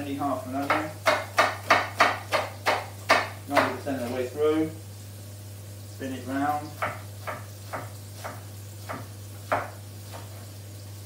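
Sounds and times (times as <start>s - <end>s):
knife chopping on wooden board: 0.6s - 4.2s, 6.8s - 10.5s.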